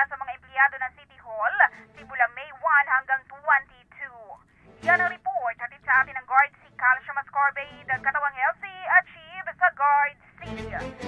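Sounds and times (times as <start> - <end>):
woman speaking over telephone: 0.0 - 11.0.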